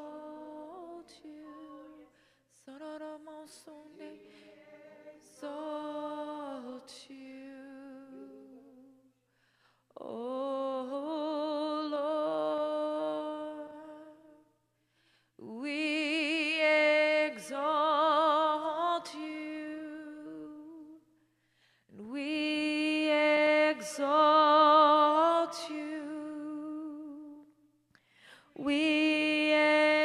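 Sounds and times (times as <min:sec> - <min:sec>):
woman singing held note: 0:00.0 - 0:02.2.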